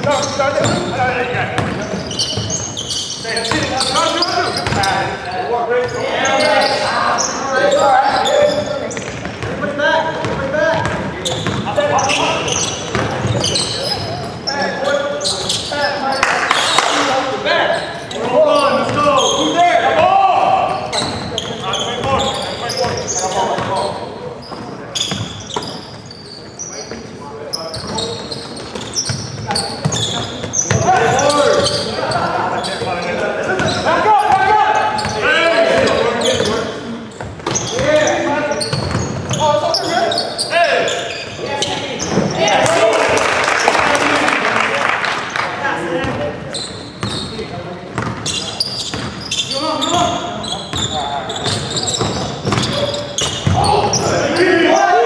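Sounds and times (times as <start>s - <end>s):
players shouting: 15.9s - 23.5s, 39.4s - 44.7s, 52.8s - 55.0s.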